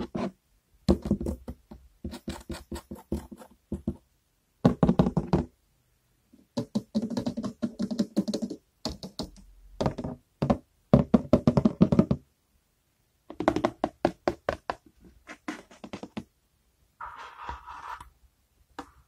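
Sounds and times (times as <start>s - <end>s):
fingers tapping on hard objects: 0.9s - 4.0s, 6.6s - 12.2s, 13.3s - 16.3s.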